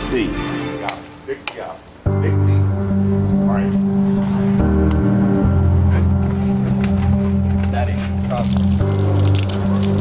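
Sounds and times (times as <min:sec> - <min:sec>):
cricket chirping: 0:00.0 - 0:07.3
music of low sustained notes: 0:02.0 - 0:10.0.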